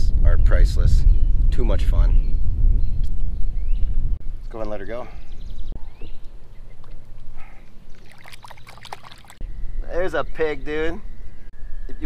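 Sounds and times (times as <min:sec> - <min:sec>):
water splashing and trickling: 0:06.7 - 0:09.4.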